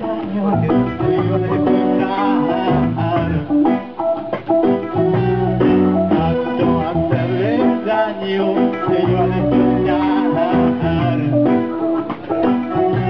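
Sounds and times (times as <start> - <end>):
live reggae band playing: 0.0 - 13.0.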